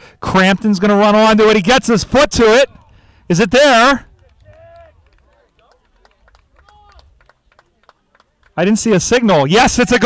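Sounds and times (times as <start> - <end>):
distant players shouting: 0.8 - 7.5.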